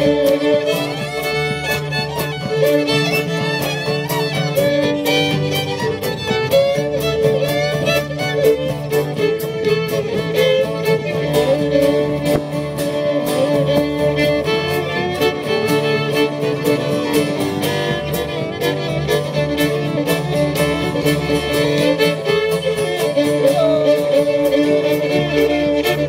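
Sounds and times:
fiddles playing melody: 0.0 - 26.0
strummed guitar rhythm: 0.0 - 26.0.

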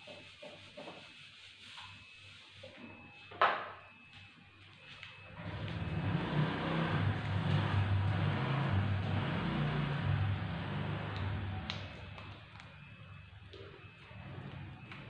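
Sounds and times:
vehicle engine passing by: 5.4 - 11.8.

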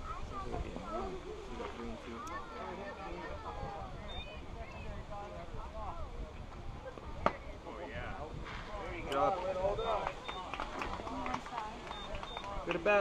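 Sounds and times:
spectators talking and calling out: 0.0 - 13.0.

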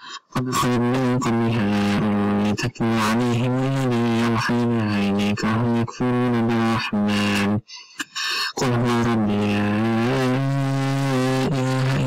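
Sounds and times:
man chanting long vowel: 0.2 - 7.7, 8.5 - 12.0.

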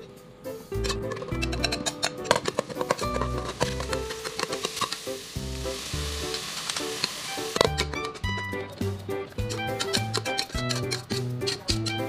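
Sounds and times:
mushrooms sizzling in pot: 0.0 - 12.0
spatula stirring: 0.7 - 12.0.

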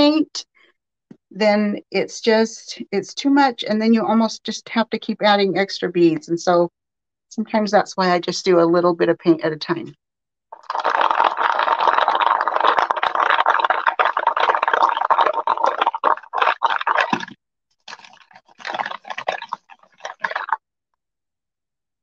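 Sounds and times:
wooden beads rolling in a bowl: 10.6 - 20.6.

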